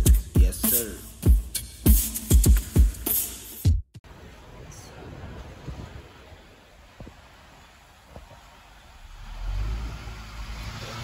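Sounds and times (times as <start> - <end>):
car engine rumbling: 6.5 - 11.0.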